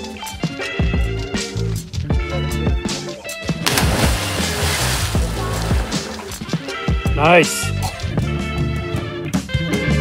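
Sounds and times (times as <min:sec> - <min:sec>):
background music: 0:00.0 - 0:10.0
water splash: 0:03.6 - 0:06.5.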